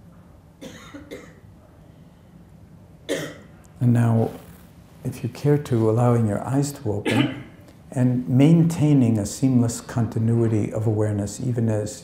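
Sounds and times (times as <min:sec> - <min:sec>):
low room hum: 0:00.0 - 0:12.0
person coughing: 0:00.6 - 0:01.4, 0:03.1 - 0:03.5, 0:07.0 - 0:07.6.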